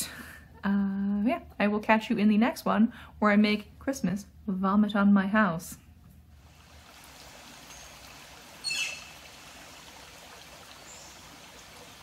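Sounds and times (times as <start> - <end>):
creek trickling over rocks: 6.4 - 12.0
bird chirping: 7.7 - 9.2
faint high bird calls: 8.6 - 9.2.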